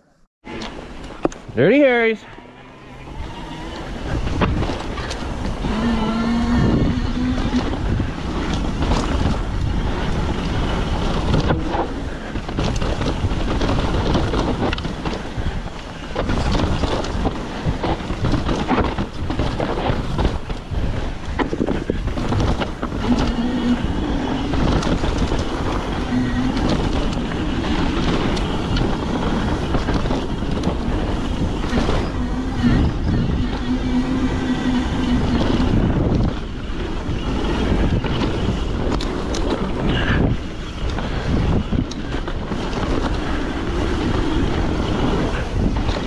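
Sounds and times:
bike tyre noise: 0:00.4 - 0:46.0
wind buffeting microphone: 0:00.4 - 0:46.0
bike knocking and rattling: 0:00.5 - 0:46.0
steady hum: 0:29.9 - 0:36.6.

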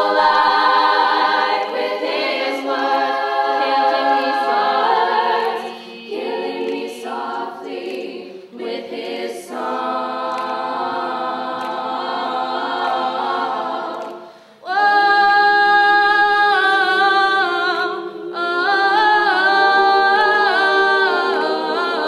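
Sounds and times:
women's group singing in harmony: 0:00.0 - 0:22.0.

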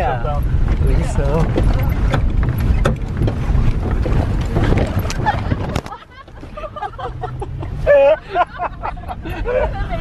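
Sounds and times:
van rumbling on bumpy road: 0:00.0 - 0:10.0
knocks and rattles: 0:00.4 - 0:06.5.

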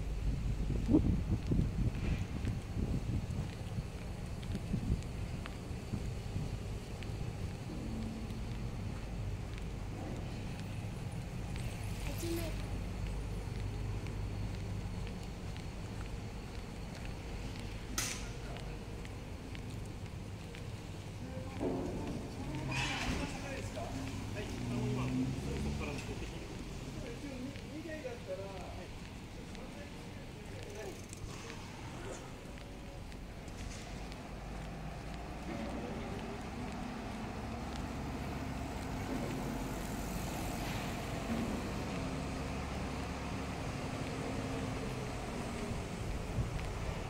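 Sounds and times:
road traffic rumble: 0:00.0 - 0:47.0
passers-by speaking: 0:11.6 - 0:14.2, 0:20.6 - 0:33.4.

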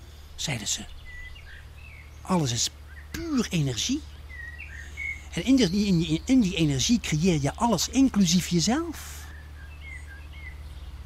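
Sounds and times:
faint bird chirps: 0:00.0 - 0:11.0
steady low hum: 0:00.0 - 0:11.0.

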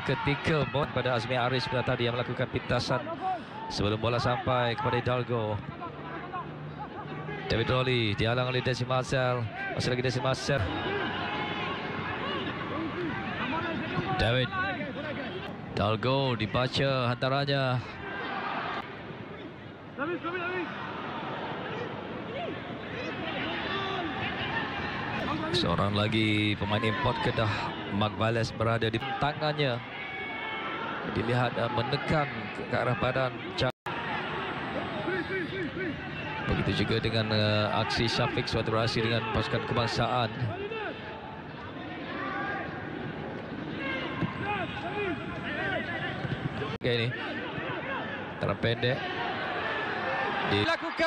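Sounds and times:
footballers shouting: 0:00.0 - 0:51.0
stadium ambience hiss: 0:00.1 - 0:51.0.

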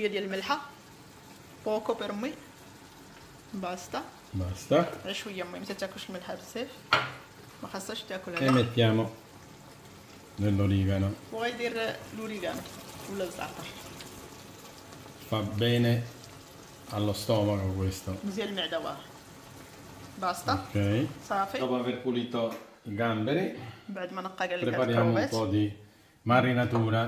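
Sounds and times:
tomatoes sizzling in a frying pan: 0:00.0 - 0:27.0.

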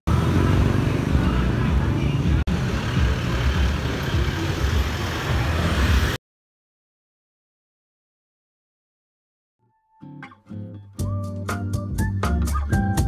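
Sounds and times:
motorcycles and vehicles rumbling: 0:00.1 - 0:06.2.

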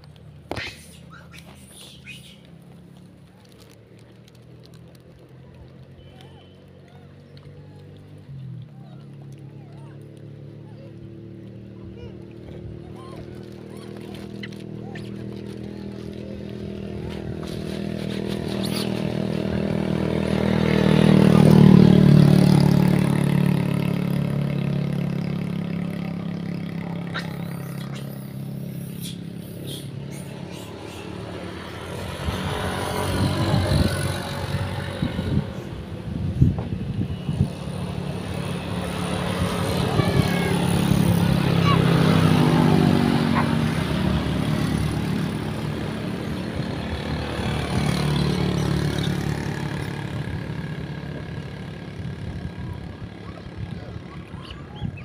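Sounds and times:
motorbikes passing: 0:00.0 - 0:55.0.

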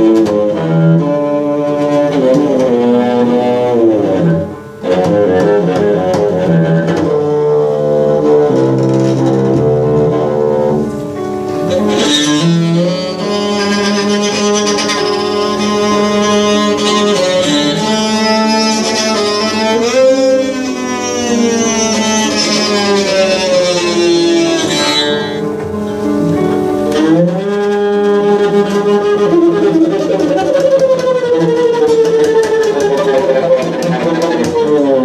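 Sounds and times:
bowed bass held notes: 0:00.0 - 0:35.0.

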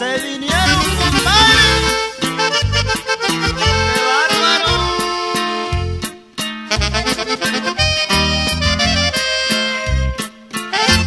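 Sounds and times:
bass and rhythm accompaniment: 0:00.0 - 0:11.0
button accordion melody: 0:00.5 - 0:11.0.

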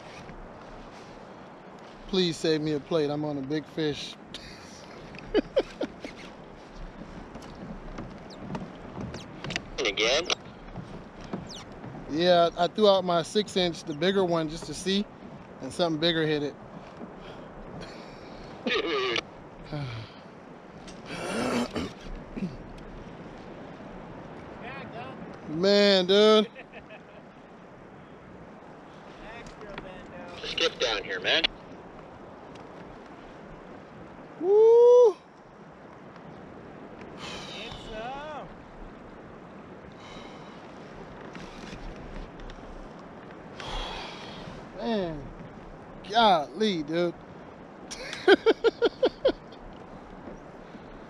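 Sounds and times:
wind and water hiss: 0:00.0 - 0:51.0.

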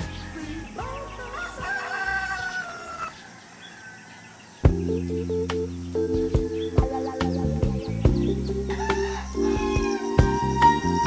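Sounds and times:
rooster crowing: 0:00.0 - 0:04.5, 0:08.6 - 0:11.0
music with steady beat: 0:04.7 - 0:11.0.

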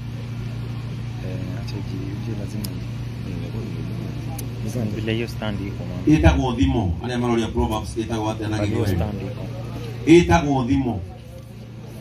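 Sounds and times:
faint voices: 0:00.0 - 0:06.3, 0:07.0 - 0:12.0
steady low hum: 0:00.0 - 0:12.0.

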